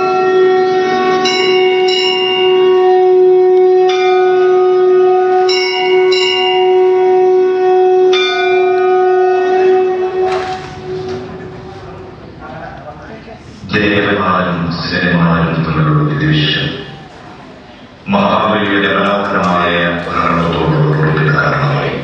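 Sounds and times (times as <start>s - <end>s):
steady horn-like tone: 0.0s - 16.9s.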